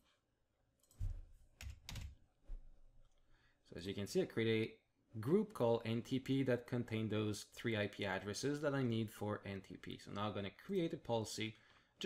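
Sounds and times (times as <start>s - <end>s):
computer keyboard typing: 1.6s - 2.1s.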